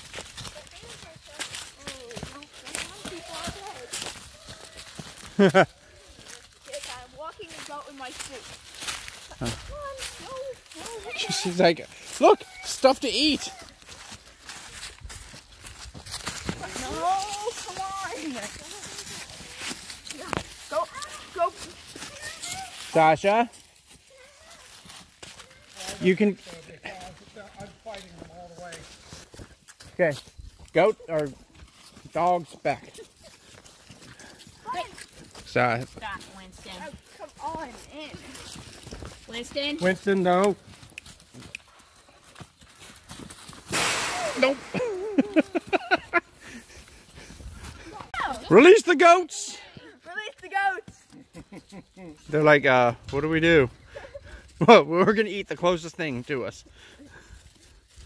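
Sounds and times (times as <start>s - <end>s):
footsteps in dry leaves: 0.0s - 49.8s, 55.8s - 58.0s.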